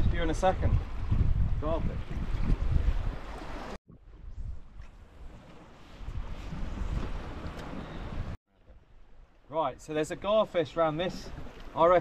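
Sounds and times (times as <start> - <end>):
wind buffeting microphone: 0.0 - 9.2.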